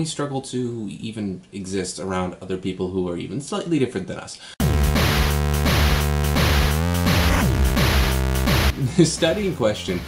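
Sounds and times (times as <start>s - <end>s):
speech: 0.0s - 4.4s, 8.8s - 10.0s
electronic intro jingle: 4.6s - 8.8s.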